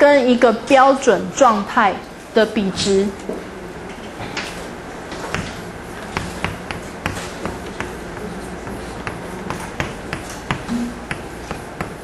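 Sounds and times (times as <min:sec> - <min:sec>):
chalk tapping on blackboard: 0:05.3 - 0:12.0.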